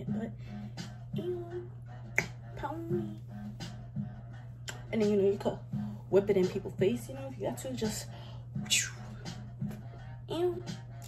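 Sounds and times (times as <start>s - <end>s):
sharp snap: 2.2s - 2.4s.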